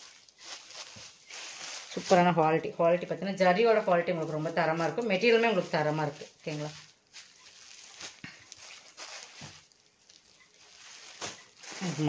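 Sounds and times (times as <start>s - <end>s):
fabric rustling: 0.0s - 12.0s.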